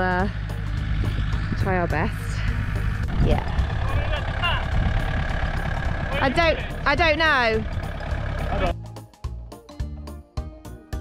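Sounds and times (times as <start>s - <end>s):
tractor engine running: 0.0s - 8.8s.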